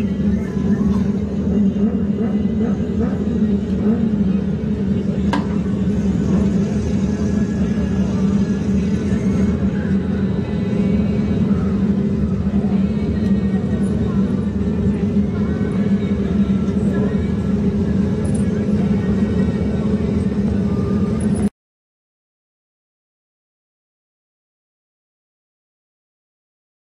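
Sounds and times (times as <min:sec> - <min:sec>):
race car engine droning: 0:00.0 - 0:21.5.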